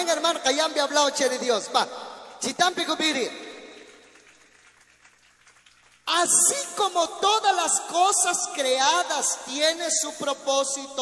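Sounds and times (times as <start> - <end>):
echo of spoken words: 0.0 - 4.1, 6.0 - 11.0.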